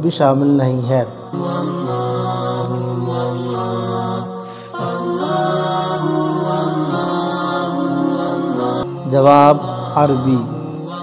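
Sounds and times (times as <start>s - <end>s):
vocal chant on long notes: 0.7s - 11.0s.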